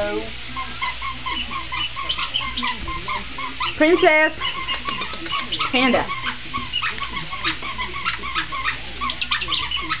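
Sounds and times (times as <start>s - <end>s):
squeaky dog toy squeaking: 0.6s - 10.0s.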